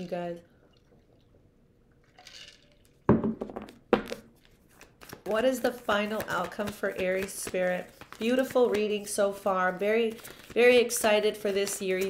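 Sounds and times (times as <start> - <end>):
sudden thunk: 3.1 - 4.1.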